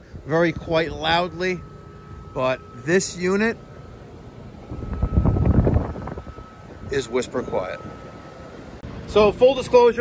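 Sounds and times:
fan air buffeting microphone: 0.0s - 10.0s.

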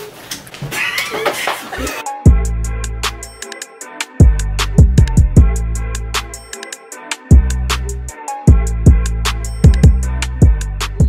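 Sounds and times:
women squealing excitedly: 0.7s - 1.5s.

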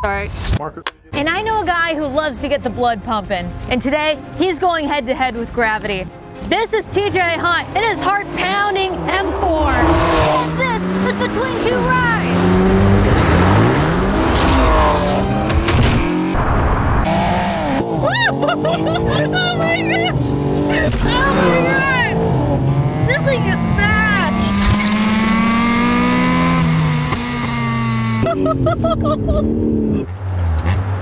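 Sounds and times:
car engine revving: 5.8s - 31.0s.

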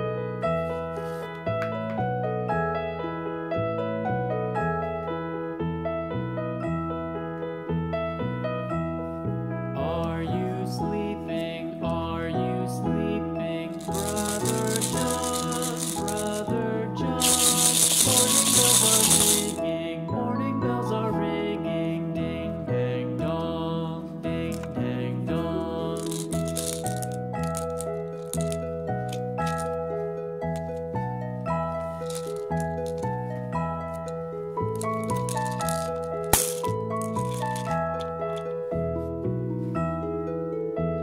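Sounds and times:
gentle background music: 0.0s - 41.0s
paper wrapping crackle: 13.8s - 16.5s, 17.2s - 19.6s, 26.0s - 29.7s, 31.8s - 33.1s, 34.8s - 38.4s
cardboard package rattling: 13.8s - 16.6s, 17.2s - 19.6s, 26.0s - 29.8s, 31.8s - 33.3s, 34.0s - 38.5s.

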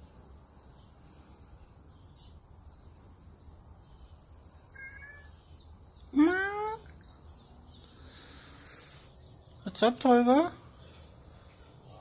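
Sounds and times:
cat meowing: 4.7s - 5.4s.

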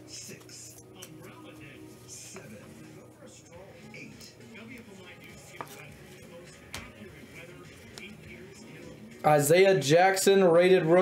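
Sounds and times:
faint television speech: 0.0s - 11.0s.

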